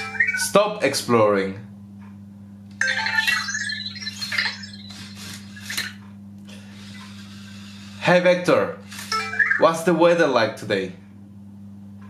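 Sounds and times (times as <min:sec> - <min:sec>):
robot electronic chirps and beeps: 0:00.0 - 0:00.8, 0:02.8 - 0:05.9, 0:09.1 - 0:10.0
steady low hum: 0:00.0 - 0:12.0.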